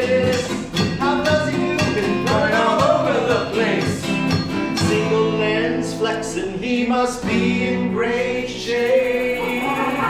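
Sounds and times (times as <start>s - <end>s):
acoustic guitars strummed: 0.0s - 10.0s
men singing: 0.0s - 10.0s.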